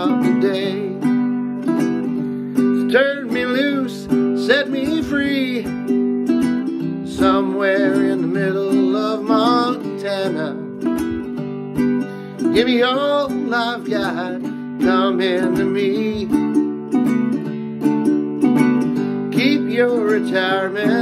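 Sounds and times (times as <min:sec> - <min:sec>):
sliding melody line: 0:00.0 - 0:21.0
ukuleles strumming: 0:00.0 - 0:21.0.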